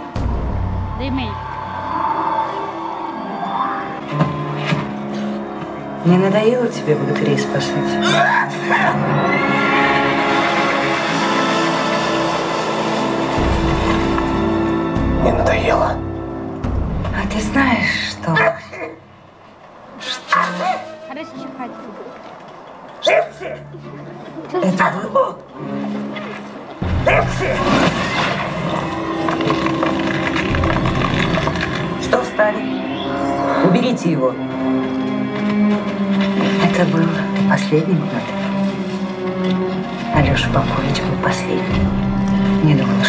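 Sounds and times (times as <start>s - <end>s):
steady low drone: 0.0s - 18.4s
film music with held chords: 0.0s - 43.0s
deep rumble: 11.5s - 18.4s, 26.8s - 32.6s.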